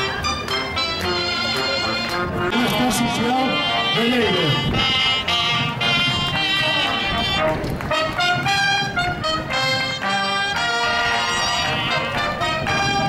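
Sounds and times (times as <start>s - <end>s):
band playing lively dance music: 0.0s - 13.0s
brass melody: 0.0s - 13.0s.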